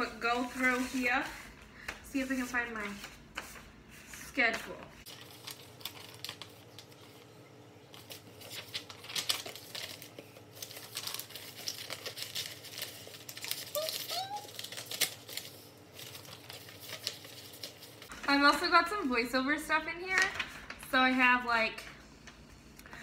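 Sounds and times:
paper sheets rustling: 0.0s - 7.3s, 7.9s - 18.8s.

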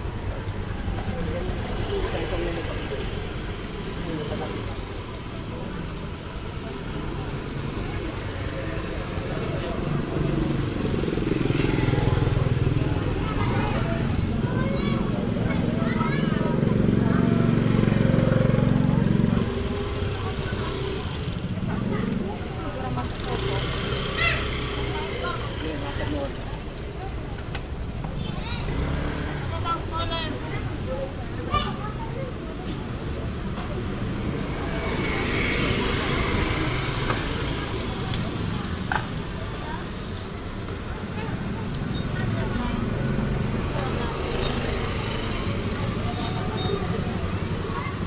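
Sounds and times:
motorbike engines: 0.0s - 48.0s
voices of people: 0.0s - 48.0s
motorbike engine running close by: 15.3s - 26.0s.

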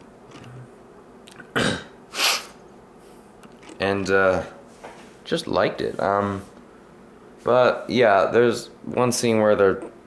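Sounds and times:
man clearing his throat: 1.4s - 2.0s.

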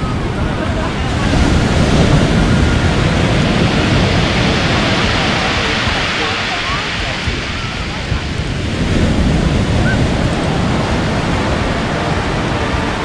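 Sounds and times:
waves breaking on pebble beach: 0.0s - 13.0s
wind rumbling on microphone: 0.0s - 13.0s.

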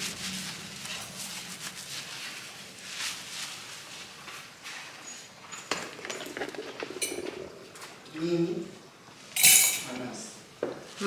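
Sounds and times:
hands scrubbing wet hair: 0.0s - 4.6s.

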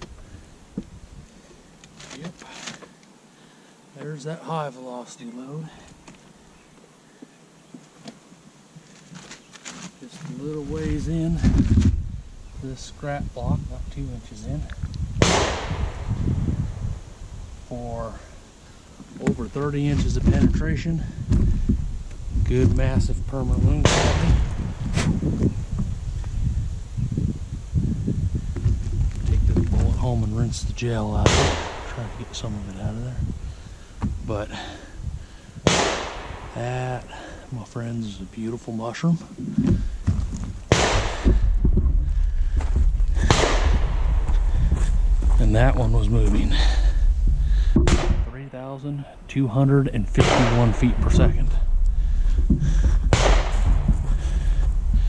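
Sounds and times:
wind rumble on microphone: 10.4s - 37.5s, 39.4s - 48.4s, 49.0s - 55.0s
rifle shots: 15.2s - 16.1s, 23.8s - 24.5s, 31.2s - 32.2s, 35.7s - 36.6s, 40.7s - 41.4s, 43.2s - 44.4s, 50.1s - 51.6s, 53.1s - 53.9s
sharp bang with echo: 15.2s - 16.2s, 23.7s - 24.6s, 31.2s - 32.3s, 35.7s - 36.6s, 40.7s - 41.4s, 43.2s - 44.8s, 47.7s - 48.5s, 50.1s - 51.8s, 52.8s - 54.2s.

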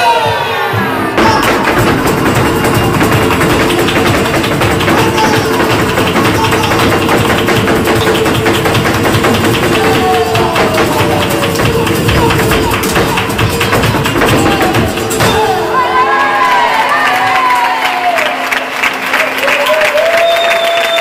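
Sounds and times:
flamenco guitar: 0.7s - 16.7s
flamenco footwork on stage: 0.9s - 15.8s.

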